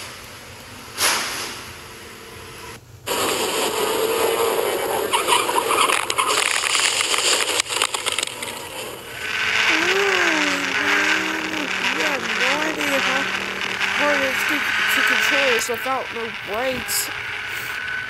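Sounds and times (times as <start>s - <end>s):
go-kart engine: 2.6s - 18.0s.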